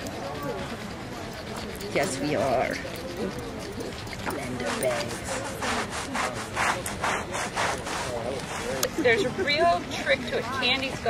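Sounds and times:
chalk scrubbing on concrete: 0:00.0 - 0:10.9.

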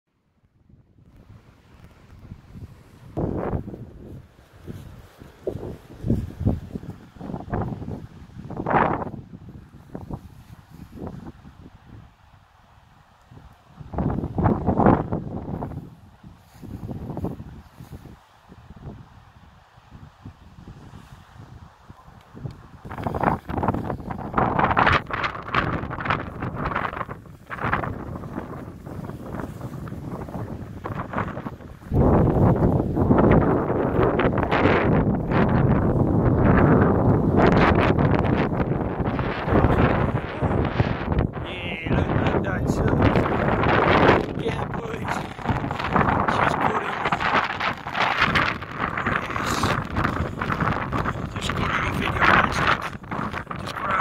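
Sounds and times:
wind buffeting microphone: 0:00.5 - 0:54.0.

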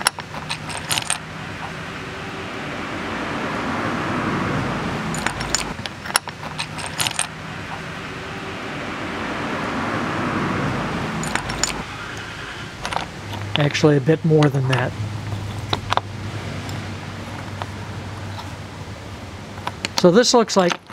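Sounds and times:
stones clinking together: 0:00.0 - 0:01.2, 0:05.1 - 0:07.8, 0:11.2 - 0:11.8, 0:19.6 - 0:20.9
steady rushing background noise: 0:00.0 - 0:20.9.

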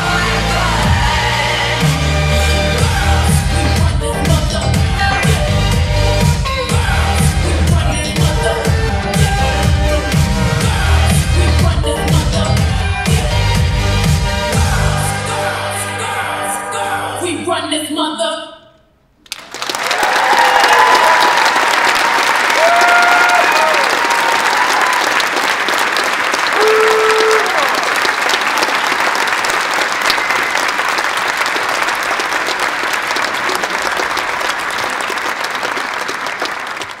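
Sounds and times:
audience applauding and cheering: 0:19.2 - 0:37.0
high whoops and shouts: 0:19.9 - 0:25.2, 0:26.6 - 0:27.9.

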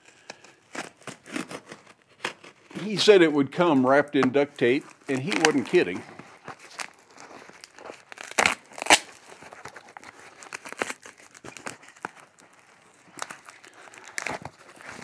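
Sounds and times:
tape crinkling and crackling: 0:00.0 - 0:15.0
tape ripping: 0:00.0 - 0:15.0.

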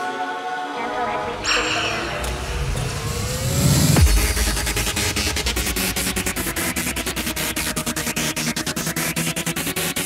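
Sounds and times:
hard house dance music: 0:01.3 - 0:10.0.

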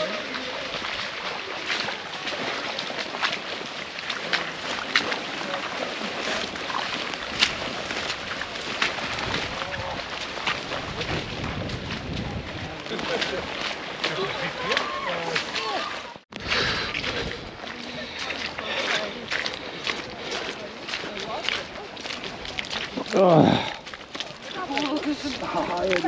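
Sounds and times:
boots splashing through water: 0:00.0 - 0:26.0
wind on microphone: 0:07.1 - 0:13.4, 0:16.4 - 0:17.7.

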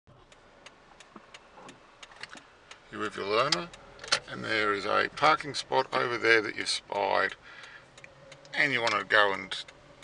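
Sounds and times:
low car cabin noise: 0:00.1 - 0:10.0
turn signal ticking: 0:00.1 - 0:10.0.

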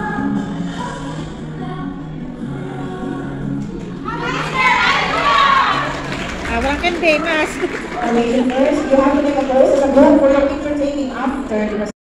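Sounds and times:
crowd shouting and cheering: 0:03.6 - 0:11.5.

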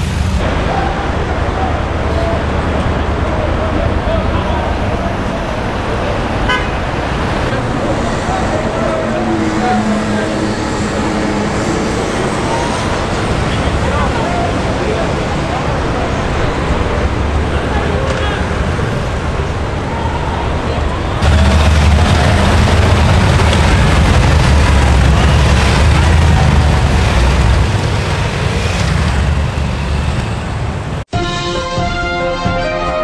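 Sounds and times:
motorcycle engines rumbling: 0:00.0 - 0:31.1
theme music: 0:21.2 - 0:28.2, 0:31.0 - 0:33.0.

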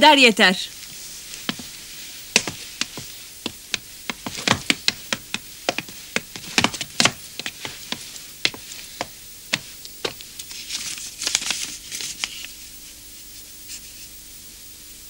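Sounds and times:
footsteps on wooden stage: 0:00.8 - 0:10.5.

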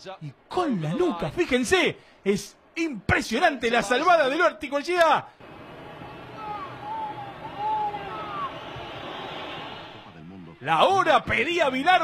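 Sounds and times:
stadium crowd noise: 0:05.3 - 0:12.0
person shouting: 0:06.4 - 0:08.5.

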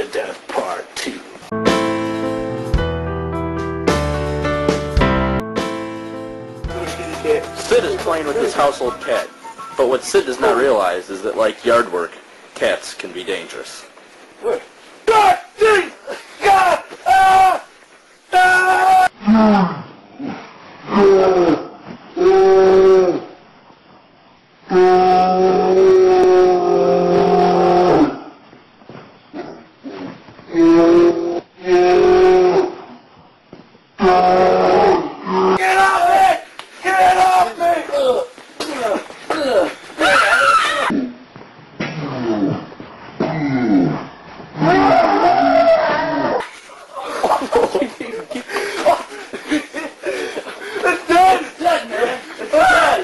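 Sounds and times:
man yelling: 0:15.0 - 0:17.7, 0:18.3 - 0:19.1, 0:35.6 - 0:40.9, 0:50.8 - 0:53.0
animal howling: 0:34.0 - 0:36.1, 0:40.0 - 0:41.0, 0:44.6 - 0:46.5.

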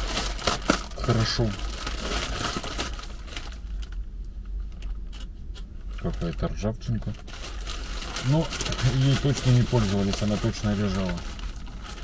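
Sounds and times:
plastic bag rustling: 0:00.0 - 0:04.0, 0:05.9 - 0:12.0
steady low hum: 0:00.0 - 0:12.0.

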